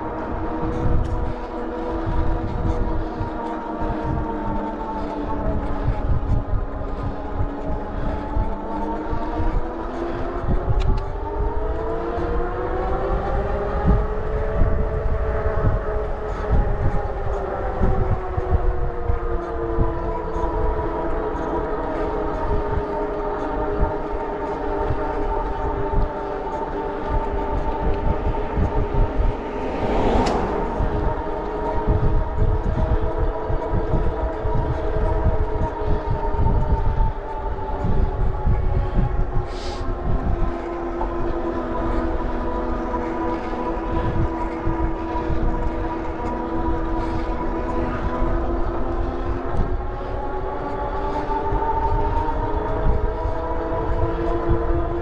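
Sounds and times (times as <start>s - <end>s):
wind buffeting microphone: 0.0s - 55.0s
motorcycle engine cruising: 24.0s - 35.2s.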